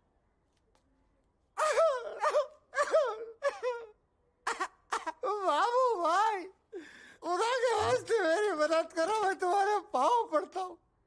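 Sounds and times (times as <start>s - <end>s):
man crying and wailing: 1.6s - 10.8s.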